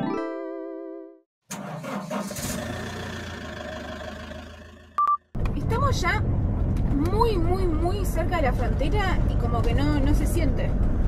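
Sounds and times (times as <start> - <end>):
vehicle engine running: 1.6 - 11.0.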